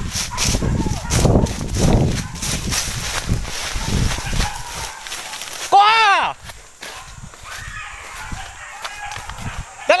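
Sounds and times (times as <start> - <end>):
footsteps through rustling undergrowth: 0.0 - 10.0
person shouting a call: 5.6 - 6.4.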